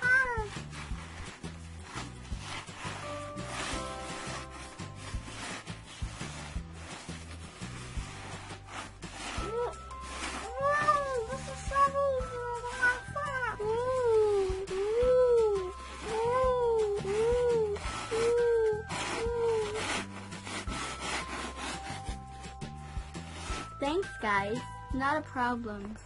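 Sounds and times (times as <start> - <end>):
scoops scraping in sand: 0.0 - 24.2
soft background music: 0.0 - 26.0.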